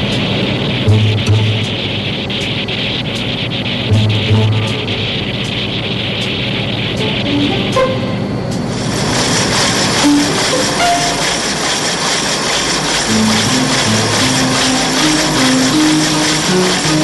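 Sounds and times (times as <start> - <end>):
soundtrack music: 0.8 - 8.4, 10.0 - 11.5, 13.1 - 17.0
drill boring through ice: 9.1 - 17.0.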